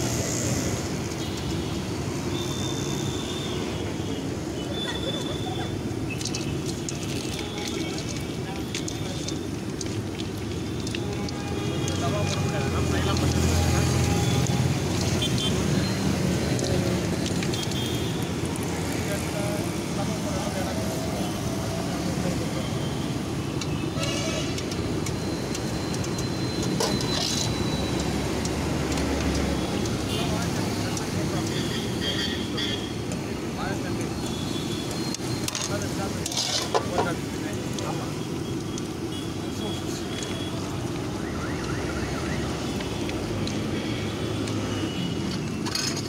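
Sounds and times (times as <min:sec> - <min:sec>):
rumble of passing vehicles: 0:00.0 - 0:46.0.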